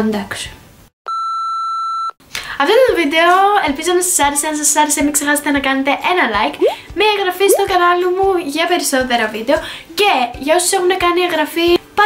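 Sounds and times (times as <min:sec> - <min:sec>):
electronic bleep tone: 0:06.6 - 0:06.8
young woman speaking: 0:06.6 - 0:09.2.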